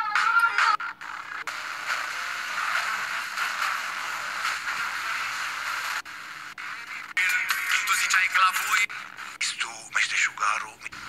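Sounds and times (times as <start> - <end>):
radio static hiss: 1.0 - 11.0.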